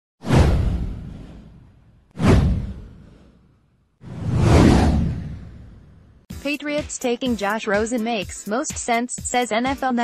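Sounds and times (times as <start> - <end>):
whoosh sound effect: 0.2 - 6.1
deep low boom: 0.3 - 3.3, 4.1 - 6.2.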